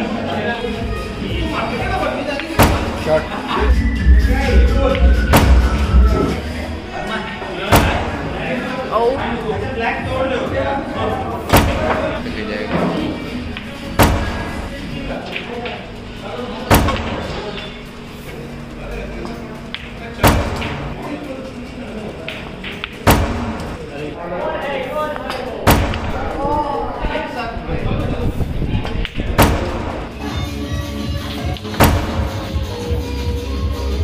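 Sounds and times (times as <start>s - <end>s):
background music: 0.0s - 24.2s, 29.4s - 34.0s
snooker balls clacking: 11.6s - 15.8s, 19.2s - 23.9s.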